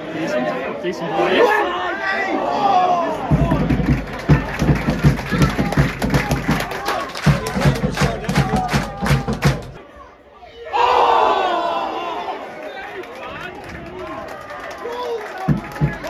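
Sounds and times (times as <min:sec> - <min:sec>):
crowd shouting: 0:00.0 - 0:16.0
football crowd chanting: 0:02.3 - 0:12.5
rhythmic claps and thumps: 0:03.3 - 0:09.8, 0:15.3 - 0:16.0.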